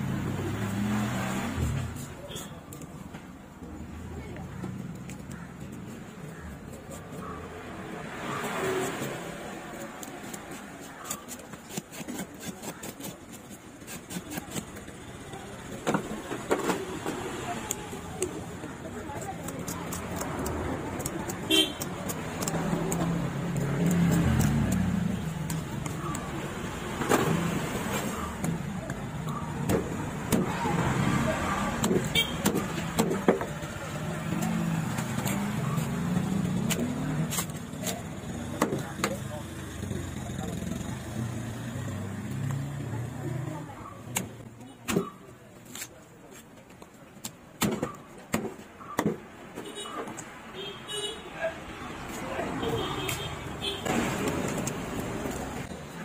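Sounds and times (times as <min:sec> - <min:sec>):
knife scraping fish scales: 0:08.4 - 0:14.9
horns honking: 0:21.4 - 0:22.0, 0:32.1 - 0:32.6
voices in background: 0:30.2 - 0:53.8.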